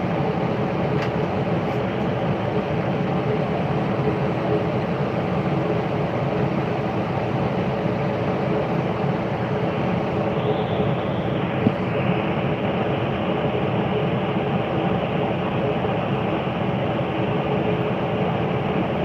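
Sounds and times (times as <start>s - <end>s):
mechanical hum and rush: 0.0s - 19.0s.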